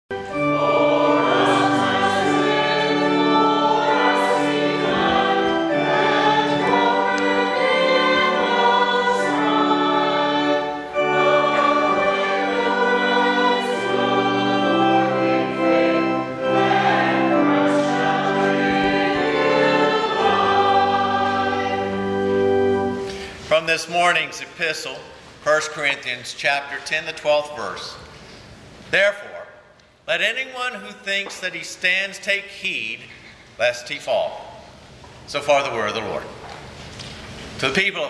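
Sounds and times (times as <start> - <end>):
group singing a hymn: 0.1 - 23.1.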